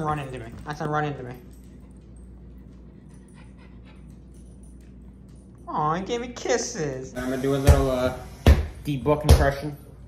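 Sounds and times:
dog clicks and taps on floor: 0.0s - 2.8s
low steady hum: 0.0s - 10.0s.

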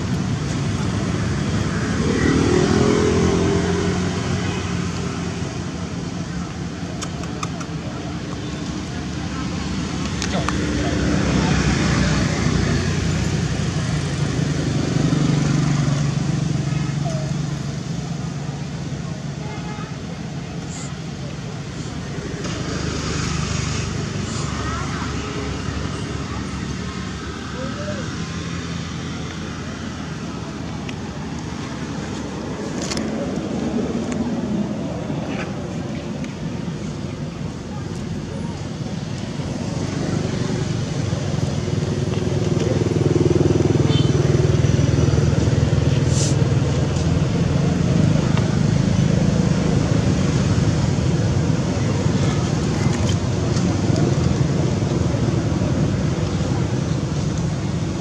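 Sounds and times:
passing traffic rumble: 0.0s - 58.0s.

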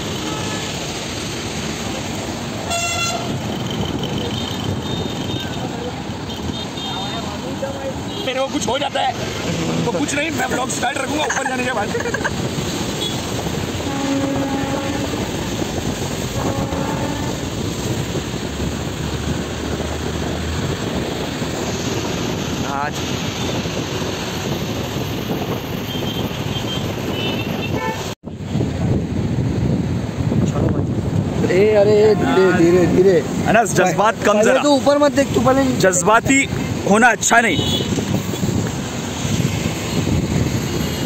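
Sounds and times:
road traffic rumble: 0.0s - 41.0s
vehicle horn honking: 0.1s - 0.8s, 2.7s - 3.6s, 4.2s - 5.7s, 6.3s - 7.3s, 13.0s - 15.6s, 16.3s - 17.6s, 25.8s - 28.2s, 37.5s - 38.1s
wind buffeting microphone: 9.2s - 36.9s, 37.7s - 41.0s.

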